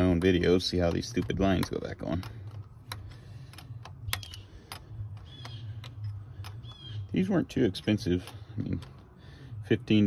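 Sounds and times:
wrench clicking on metal fitting: 0:00.0 - 0:06.9.

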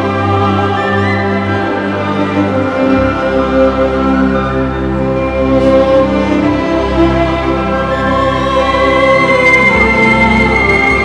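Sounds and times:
orchestra playing slow sad air: 0:00.0 - 0:11.0.

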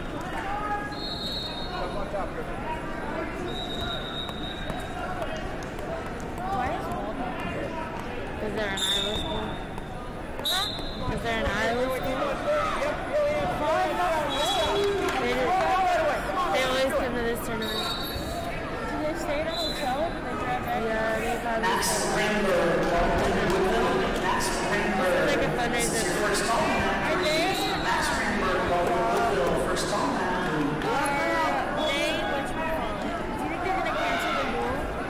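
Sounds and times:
voices calling out and shouting: 0:00.0 - 0:35.0
referee whistle blasts: 0:00.9 - 0:01.9, 0:03.5 - 0:04.8, 0:10.4 - 0:11.1, 0:14.3 - 0:14.8, 0:17.6 - 0:18.5.

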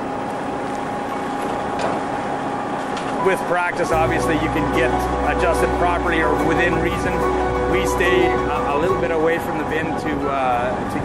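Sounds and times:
hydraulic lift humming: 0:00.0 - 0:11.0.

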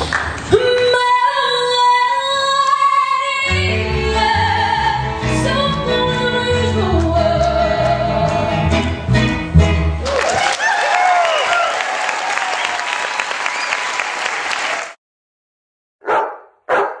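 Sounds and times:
song with guitars: 0:03.4 - 0:10.0
audience applauding and cheering: 0:10.0 - 0:15.0
dog barking: 0:16.0 - 0:17.0.

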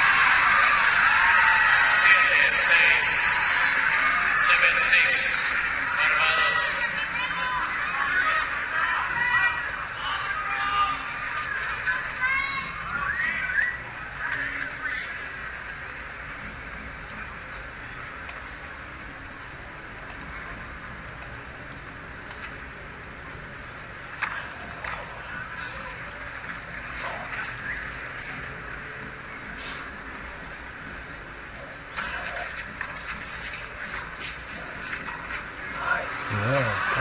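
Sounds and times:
crowd murmur: 0:00.0 - 0:37.0.

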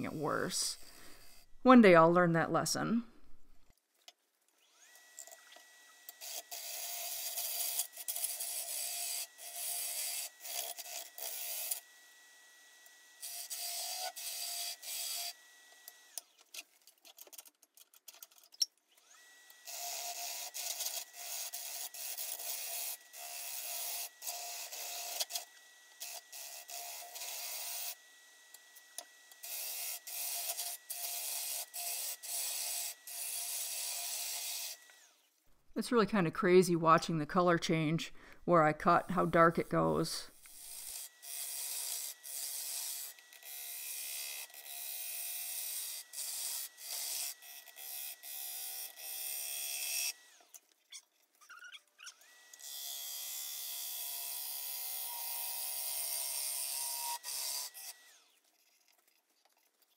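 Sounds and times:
gouge shearing wood on lathe: 0:04.6 - 0:16.2, 0:19.0 - 0:35.1, 0:39.4 - 0:50.5, 0:52.2 - 0:58.4.

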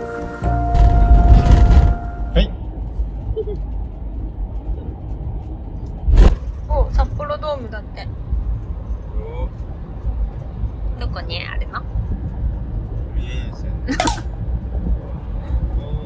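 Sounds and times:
road and engine rumble: 0:00.0 - 0:16.0
sharp thump: 0:06.0 - 0:06.6.

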